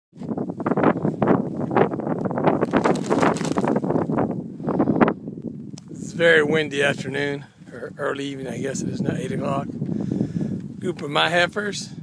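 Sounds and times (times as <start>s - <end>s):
wind buffeting microphone: 0.2s - 12.0s.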